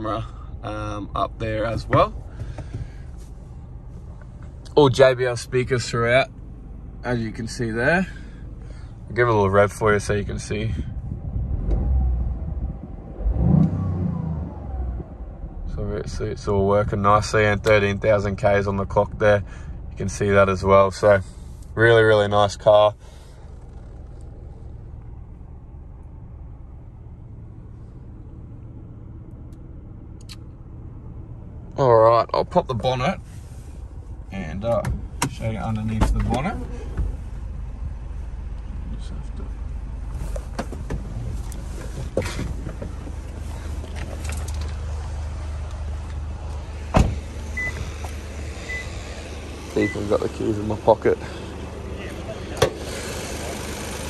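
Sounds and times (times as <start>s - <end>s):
car engine idling: 0.0s - 13.5s, 14.4s - 54.0s
car door shutting: 1.8s - 3.0s, 23.1s - 24.7s, 34.7s - 37.2s, 40.1s - 44.9s, 46.8s - 49.1s, 52.5s - 53.3s.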